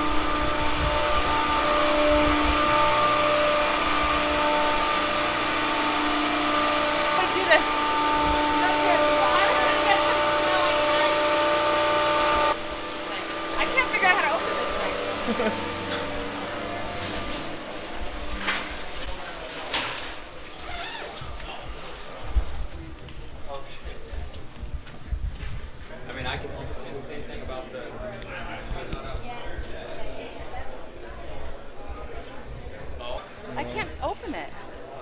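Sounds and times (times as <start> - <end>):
indistinct chatter: 0.0 - 35.0
refrigeration machinery hum: 0.0 - 35.0
voices: 7.0 - 11.6, 13.1 - 20.0.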